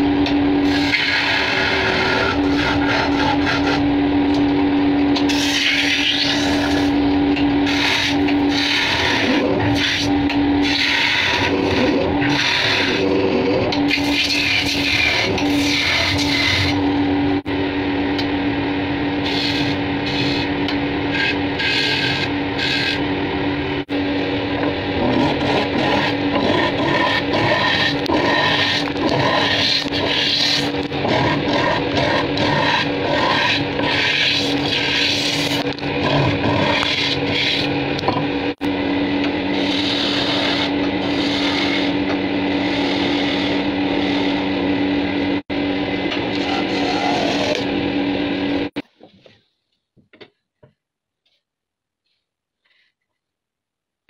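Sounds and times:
wood lathe motor hum: 0.0s - 4.5s, 5.2s - 17.5s, 19.1s - 48.8s
turning tool scraping wood: 0.6s - 3.8s, 5.2s - 7.0s, 7.6s - 16.8s, 21.1s - 23.0s, 25.0s - 38.2s, 39.5s - 44.6s, 46.2s - 47.7s.

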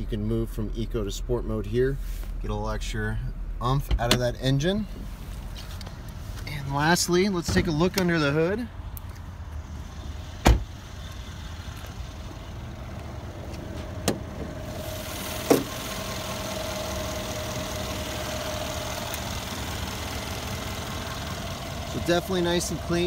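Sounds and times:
car engine idling: 3.0s - 23.0s
heavy thump: 10.4s - 10.7s, 15.4s - 15.8s.

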